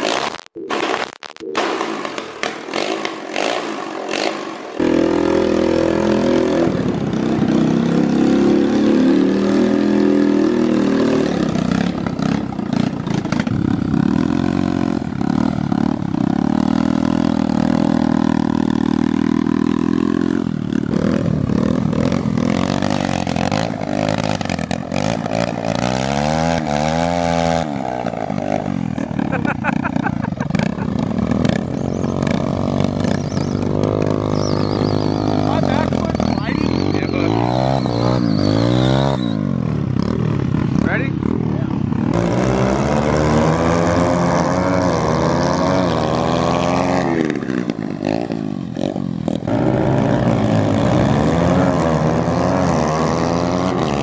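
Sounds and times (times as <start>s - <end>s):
motorcycle engine starting and running: 0.0s - 54.0s.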